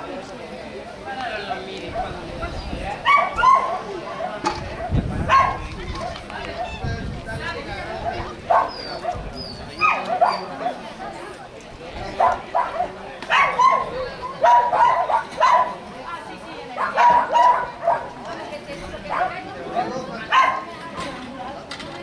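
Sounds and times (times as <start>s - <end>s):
dog barking: 3.0s - 6.8s, 8.0s - 11.2s, 12.2s - 15.8s, 16.8s - 18.2s, 19.1s - 19.4s, 20.3s - 20.7s.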